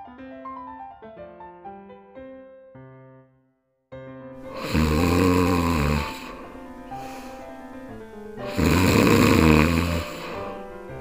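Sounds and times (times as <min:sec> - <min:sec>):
soft background music: 0:04.4 - 0:11.0
rasping snore: 0:04.5 - 0:11.0.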